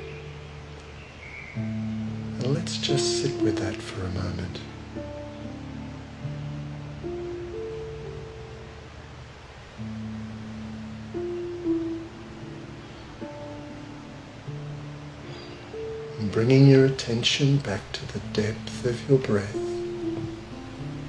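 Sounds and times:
harp plucked notes: 0:00.0 - 0:08.9, 0:09.8 - 0:21.0.

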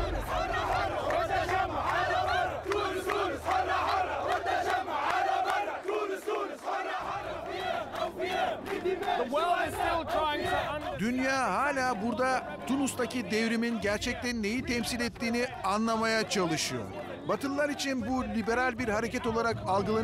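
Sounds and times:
low rumble: 0:00.0 - 0:03.9
crowd shouting and chanting: 0:00.0 - 0:20.0.

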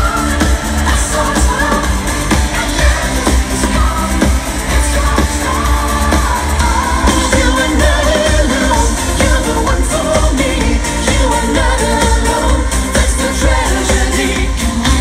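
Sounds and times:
heavy bass beat: 0:00.0 - 0:15.0
live synth-pop band: 0:00.0 - 0:15.0
male lead vocal: 0:00.0 - 0:15.0.

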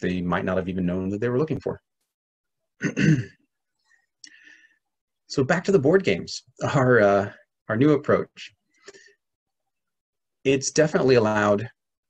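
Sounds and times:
man clearing his throat: 0:02.8 - 0:03.4.

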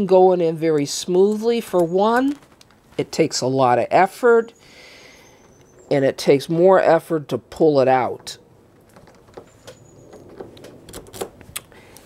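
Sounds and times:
key clicking and scraping in lock: 0:08.8 - 0:11.4.

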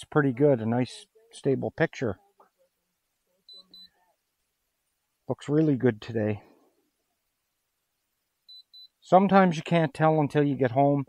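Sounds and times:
man speaking: 0:00.0 - 0:02.2, 0:05.3 - 0:06.6, 0:09.0 - 0:11.0
high electronic beeps: 0:03.5 - 0:03.9, 0:08.5 - 0:09.0.

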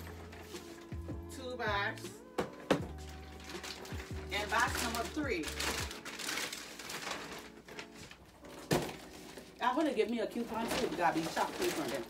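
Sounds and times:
plastic bag rustling: 0:02.8 - 0:12.0.

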